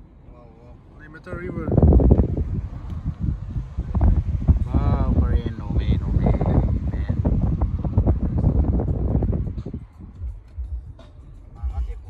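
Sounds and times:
wind buffeting microphone: 1.0s - 12.0s.

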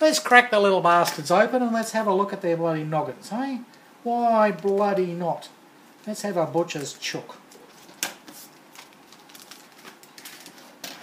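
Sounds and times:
plastic bag crinkling: 6.7s - 11.0s.

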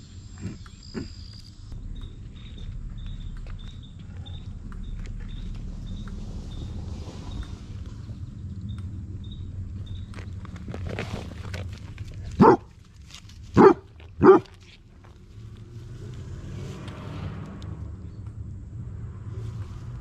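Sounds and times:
dog barking: 12.4s - 12.7s, 13.6s - 14.5s.

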